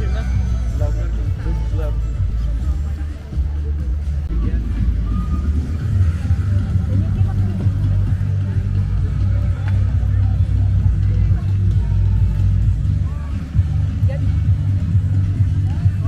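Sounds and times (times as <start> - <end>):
faint music: 0.0 - 16.0
steady low rumble: 0.0 - 16.0
voices: 0.0 - 16.0.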